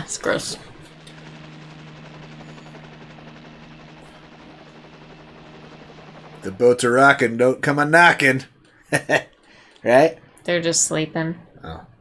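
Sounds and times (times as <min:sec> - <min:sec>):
low soundtrack drone: 0:00.0 - 0:11.8.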